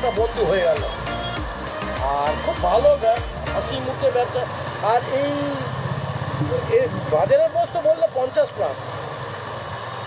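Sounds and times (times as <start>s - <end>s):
people talking: 6.4s - 8.9s.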